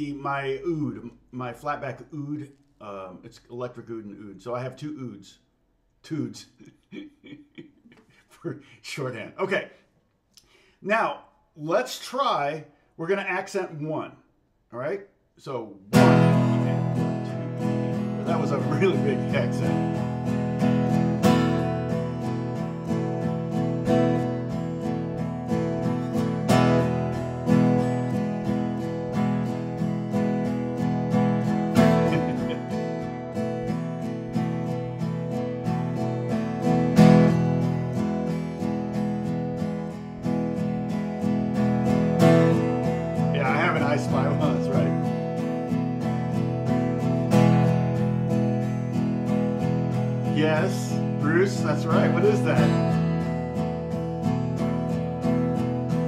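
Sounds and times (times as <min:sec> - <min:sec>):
acoustic guitar strumming: 0:15.9 - 0:56.0.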